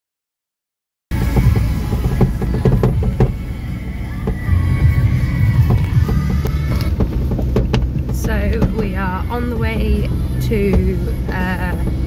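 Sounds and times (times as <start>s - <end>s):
car cabin rumble: 1.1s - 12.0s
knocks and jolts from road: 1.1s - 12.0s
music playing: 1.1s - 12.0s.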